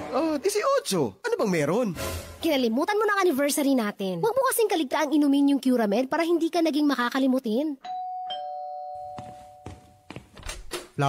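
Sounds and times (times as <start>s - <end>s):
two-tone doorbell chime: 7.8s - 10.1s.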